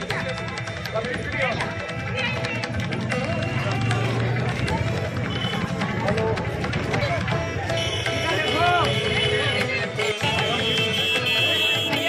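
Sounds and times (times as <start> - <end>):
crowd voices overlapping: 0.0 - 12.0.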